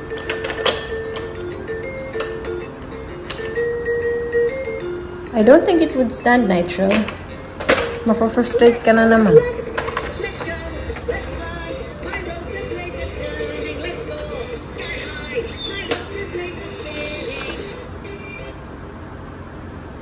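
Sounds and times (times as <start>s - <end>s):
plastic toys clicking: 0.0s - 2.6s, 6.9s - 8.0s, 9.6s - 12.4s.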